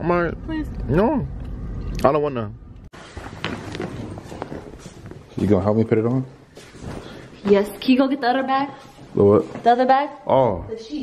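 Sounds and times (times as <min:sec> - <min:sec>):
footsteps on tiled floor: 0:03.0 - 0:10.0.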